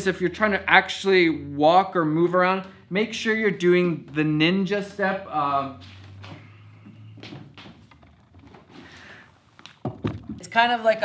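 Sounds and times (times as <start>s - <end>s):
scuffing and rustling: 5.6s - 9.8s.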